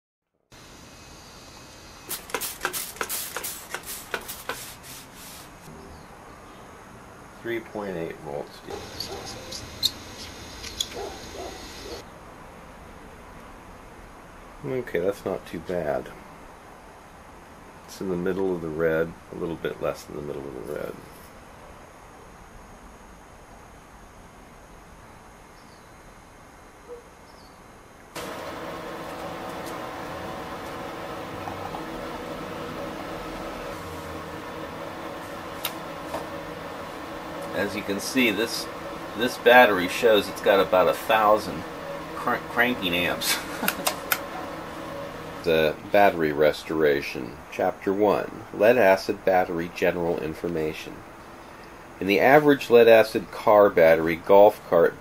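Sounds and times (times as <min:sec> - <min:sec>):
steady machine hum: 0:00.5 - 0:12.0, 0:27.6 - 0:55.0
marker squeaking on plastic: 0:08.8 - 0:11.7.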